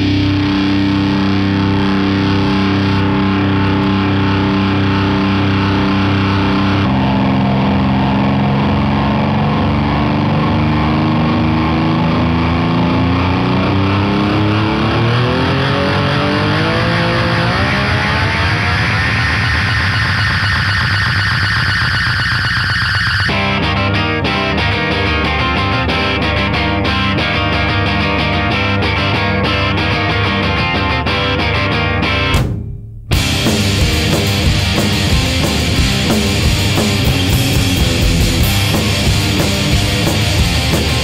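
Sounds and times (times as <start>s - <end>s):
pulsing low end: 0.0s - 30.5s, 32.3s - 41.0s
distorted electric guitar droning: 0.0s - 41.0s
tone sliding upward in pitch: 13.8s - 23.4s.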